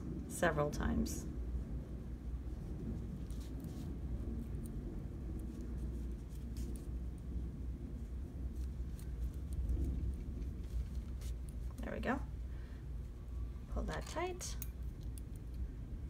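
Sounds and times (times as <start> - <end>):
steady low hum: 0.0 - 16.0
yarn and needle rustling: 0.6 - 16.0.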